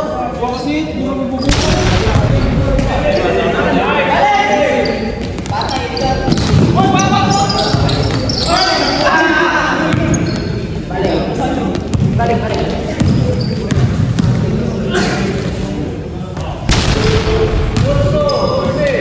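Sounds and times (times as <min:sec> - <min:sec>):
sneakers squeaking on court floor: 0:01.4 - 0:03.6, 0:04.5 - 0:09.2, 0:09.8 - 0:14.7, 0:17.8 - 0:19.0
sharp impacts: 0:01.4 - 0:04.6, 0:16.7 - 0:18.5.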